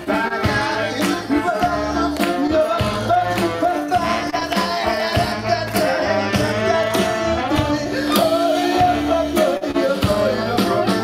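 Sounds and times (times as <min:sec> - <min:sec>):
klezmer band playing: 0:00.0 - 0:11.0
violin and trombone melody: 0:00.0 - 0:11.0.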